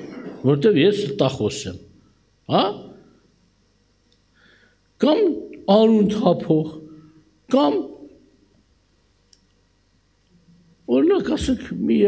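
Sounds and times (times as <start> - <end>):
man speaking: 0.4 - 3.1, 5.0 - 8.2, 10.8 - 12.0.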